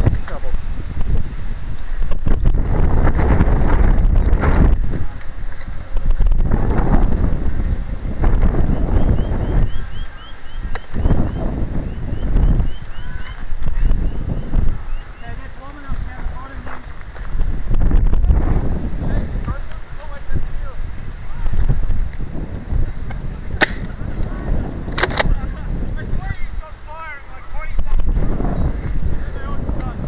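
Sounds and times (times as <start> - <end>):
wind rumbling on microphone: 0.0 - 30.0
distant shouting voices: 9.1 - 16.6
sharp clicks: 23.1 - 24.0, 24.9 - 25.4.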